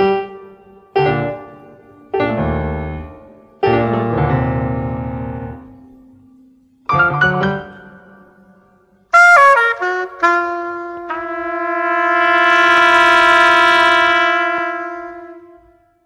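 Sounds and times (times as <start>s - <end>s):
jazz wind instrument solo: 9.1s - 15.9s.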